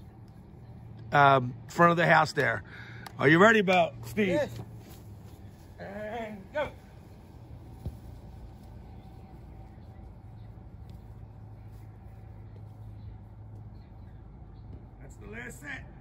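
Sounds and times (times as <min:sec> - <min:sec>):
low motor hum: 0:03.8 - 0:15.0.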